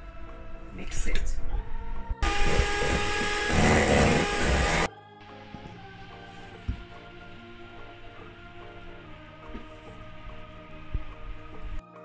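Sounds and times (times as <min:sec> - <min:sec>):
electric hand mixer whining: 0:02.2 - 0:04.9, 0:05.6 - 0:11.8.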